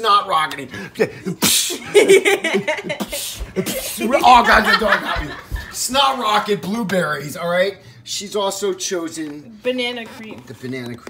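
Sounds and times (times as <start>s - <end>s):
forceful nose blast: 1.4s - 2.0s, 2.9s - 4.1s
laughter: 1.8s - 5.8s.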